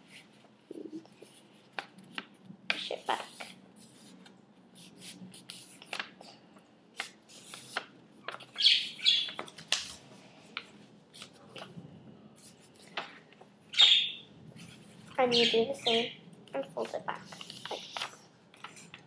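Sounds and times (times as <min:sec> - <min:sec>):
paper rustling: 0:00.0 - 0:06.3, 0:07.0 - 0:11.8, 0:16.8 - 0:19.0
budgerigars chirping and squawking: 0:13.7 - 0:14.2, 0:15.2 - 0:16.1.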